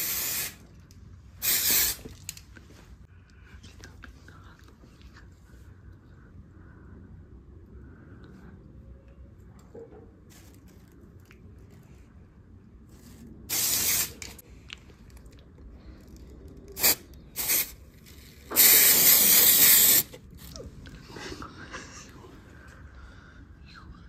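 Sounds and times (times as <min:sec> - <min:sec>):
aerosol spray hissing: 0:00.0 - 0:00.6, 0:01.4 - 0:02.1, 0:13.5 - 0:14.4, 0:16.8 - 0:17.8, 0:18.5 - 0:20.1.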